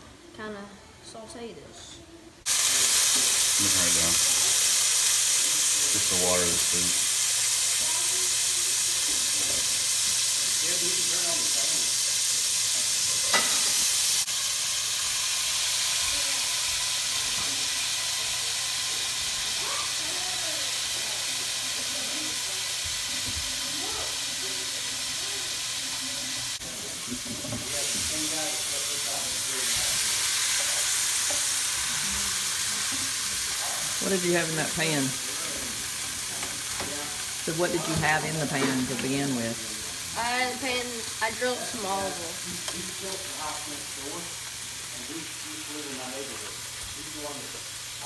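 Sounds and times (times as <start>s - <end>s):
food sizzling in a frying pan: 2.4s - 48.0s.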